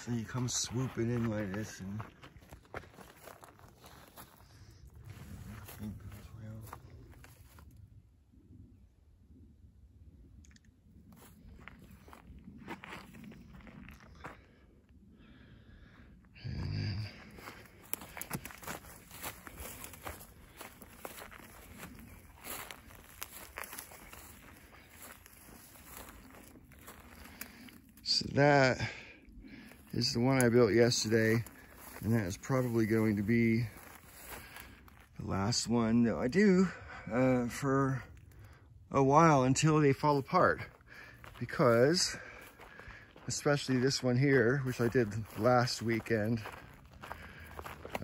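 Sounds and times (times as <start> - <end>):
footsteps crunching on dry grass: 0.0 - 8.0, 11.0 - 15.4, 16.4 - 48.0
low voice: 5.1 - 6.9.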